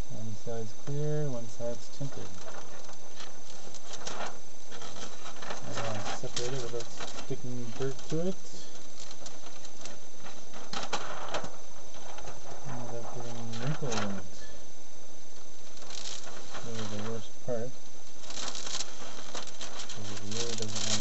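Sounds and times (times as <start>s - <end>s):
plastic film crackling: 0.9s - 14.7s, 15.3s - 21.0s.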